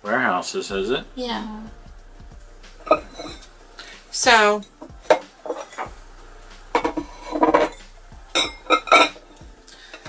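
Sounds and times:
stoneware bowls clinking: 2.8s - 3.5s, 4.6s - 5.9s, 6.7s - 7.8s, 8.4s - 10.0s.

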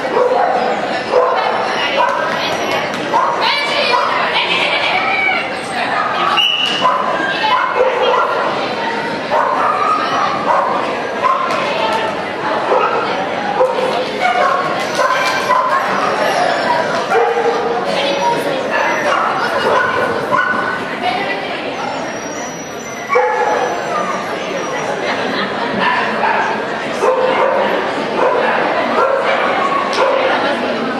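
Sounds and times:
people's voices: 0.0s - 30.9s
dog barking and yipping: 23.1s - 24.1s.

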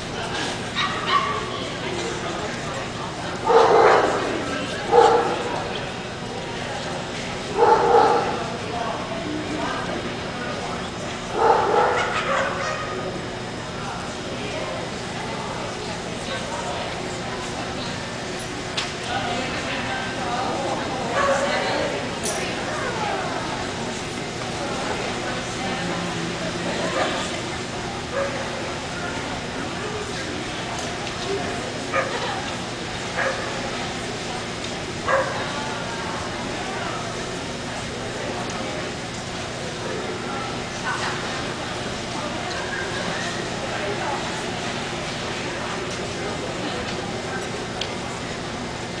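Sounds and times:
large hall background noise: 0.0s - 49.0s
dog barking: 3.5s - 4.2s, 4.9s - 5.4s, 7.6s - 8.4s, 11.4s - 12.9s, 35.1s - 35.4s.

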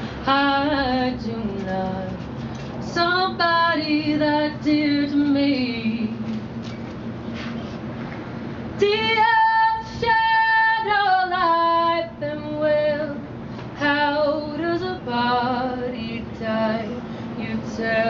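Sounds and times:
woman singing a cappella: 0.2s - 6.4s, 8.8s - 18.0s.

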